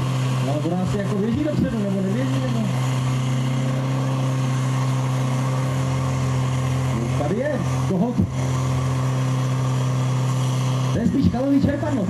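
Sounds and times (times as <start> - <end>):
pump engine running steadily: 0.0 - 12.0.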